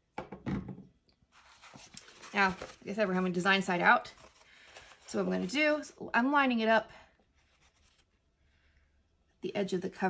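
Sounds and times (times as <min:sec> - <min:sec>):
paper rustling: 0:01.3 - 0:05.9.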